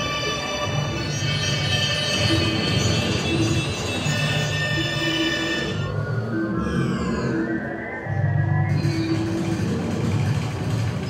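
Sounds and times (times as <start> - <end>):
ambient electronic music: 0.0 - 11.0.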